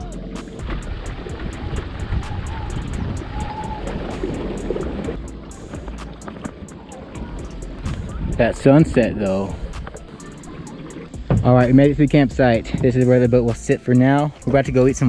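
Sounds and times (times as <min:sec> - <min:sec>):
music with steady beat: 0:00.0 - 0:15.0
water noise from boat: 0:00.0 - 0:15.0
wind: 0:00.0 - 0:15.0.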